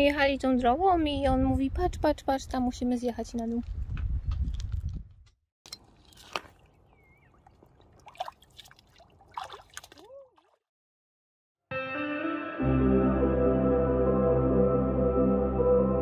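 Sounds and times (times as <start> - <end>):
bare feet splashing in shallow water: 5.7 - 10.6
ambient music: 11.7 - 16.0.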